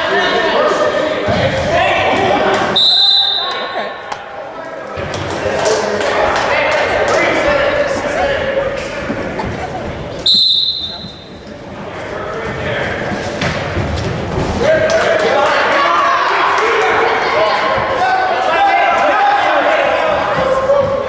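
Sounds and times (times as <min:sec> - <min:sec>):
referee's whistle blast: 0:02.8 - 0:03.6, 0:10.2 - 0:11.3
people shouting: 0:14.6 - 0:21.0.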